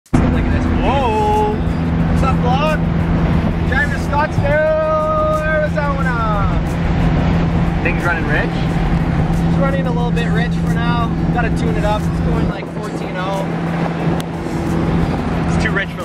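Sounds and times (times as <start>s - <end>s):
car engine running: 0.1s - 16.0s
driver speaking: 0.2s - 3.0s, 3.6s - 6.7s, 7.8s - 13.7s, 15.4s - 16.0s.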